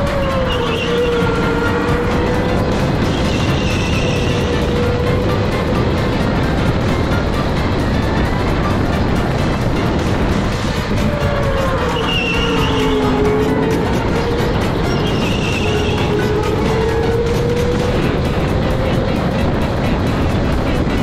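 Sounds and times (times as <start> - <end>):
music: 0.0 - 21.0
wind and tyre noise: 0.0 - 21.0.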